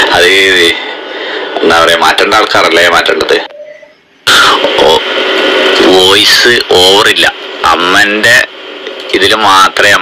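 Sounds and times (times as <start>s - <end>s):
recorded voice speaking: 0.0s - 10.0s
steady hiss: 4.1s - 10.0s.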